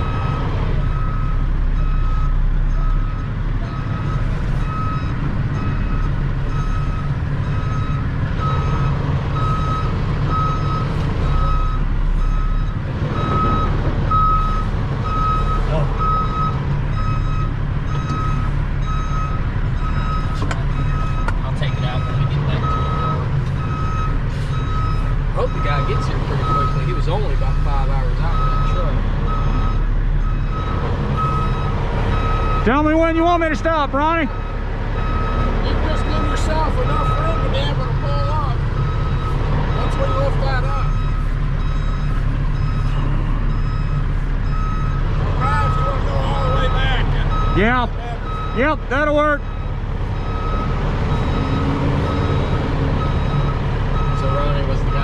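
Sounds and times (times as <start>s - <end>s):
truck backup alarm beeping: 0.0s - 55.0s
truck engine rumble: 0.0s - 55.0s.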